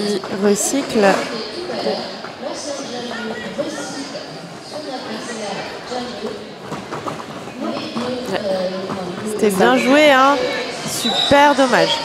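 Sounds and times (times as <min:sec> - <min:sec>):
indistinct background voices: 0:00.0 - 0:12.0
roller skates clacking on wood: 0:06.0 - 0:10.0.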